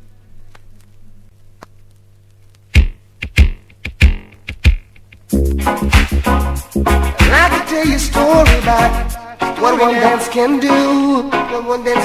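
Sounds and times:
low steady hum: 0.0 - 5.4
sharp drum hits: 2.8 - 4.9.

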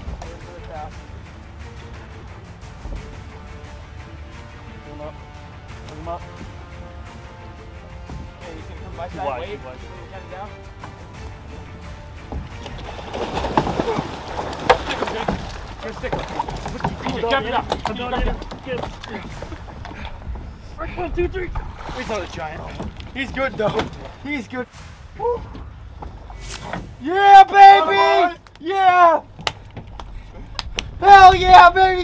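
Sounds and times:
background music: 0.0 - 32.0
low rumble: 6.0 - 27.0
fish splashing in water: 12.6 - 20.0.

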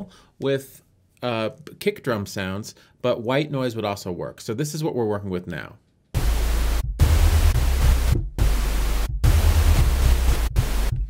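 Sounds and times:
pink noise hiss: 6.2 - 10.9
synthesizer low hum notes: 6.2 - 11.0.

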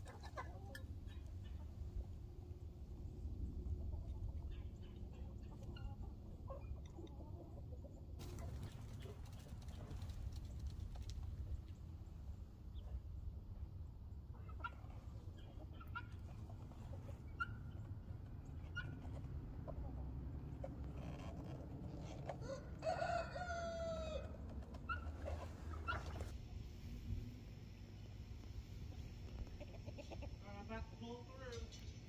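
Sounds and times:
rooster crowing: 22.4 - 24.4.

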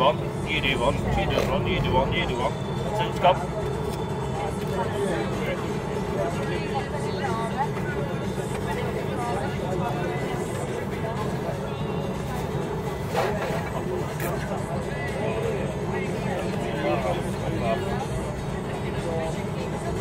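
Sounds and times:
coach engine and road drone: 0.0 - 20.0
passengers chatting: 0.0 - 20.0.

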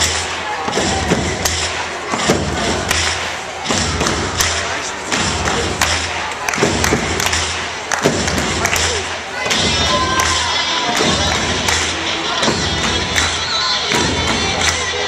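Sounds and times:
chatter of onlookers: 0.0 - 15.0
music with pulsing bass: 0.0 - 15.0.

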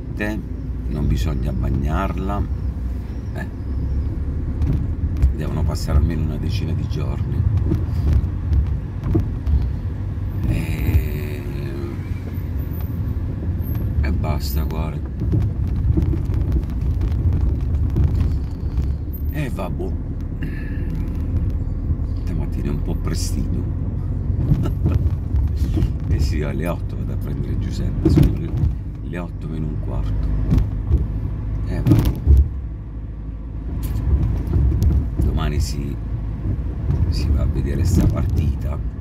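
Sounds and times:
car engine rumble: 0.0 - 39.0
road noise: 0.0 - 39.0
low thump: 7.4 - 9.9, 15.0 - 19.1, 27.9 - 29.0, 30.3 - 32.7, 34.0 - 35.4.

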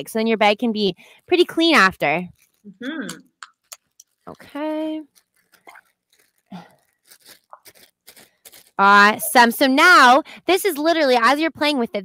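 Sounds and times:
plastic bag crinkling: 1.2 - 2.7, 3.5 - 10.1
slime squishing: 2.4 - 8.8.

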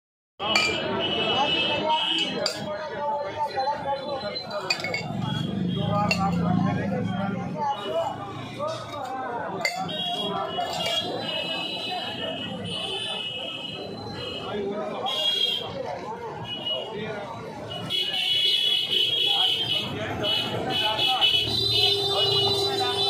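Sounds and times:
background chatter of voices: 0.4 - 23.0
steel tumblers clinking: 0.5 - 0.8, 4.6 - 5.2, 9.6 - 11.1.

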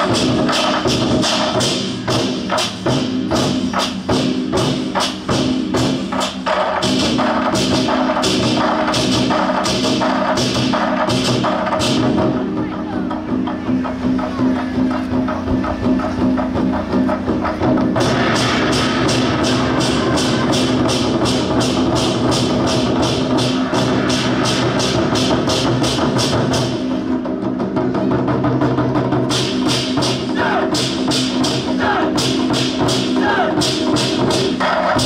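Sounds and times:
war drums played with sticks: 0.0 - 35.0.

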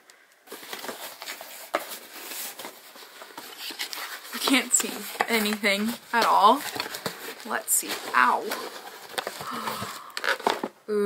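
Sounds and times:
cardboard rustling and scraping: 0.5 - 10.8.

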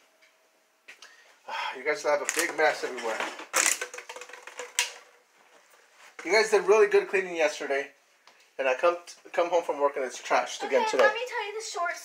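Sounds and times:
man speaking: 1.5 - 3.4, 6.2 - 8.0, 8.6 - 11.1.

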